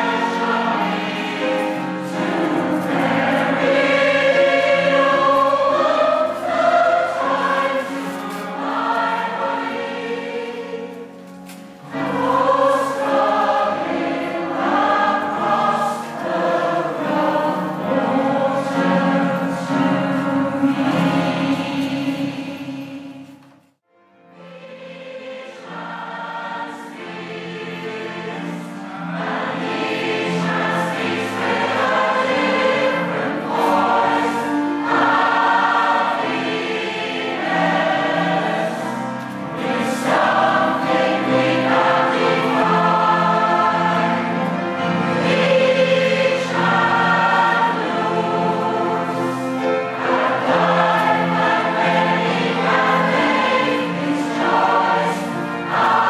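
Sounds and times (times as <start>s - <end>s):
mixed choir singing: 0.0s - 23.5s, 24.2s - 56.0s.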